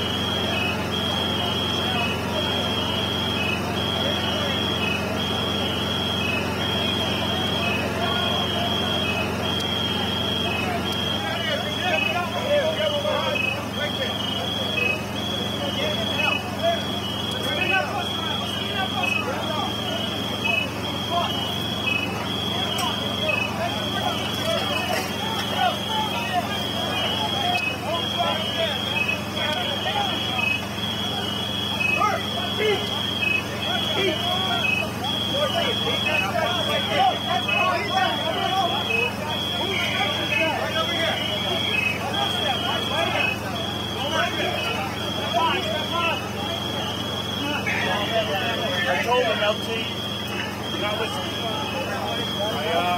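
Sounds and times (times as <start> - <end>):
people talking over each other: 0.0 - 52.9.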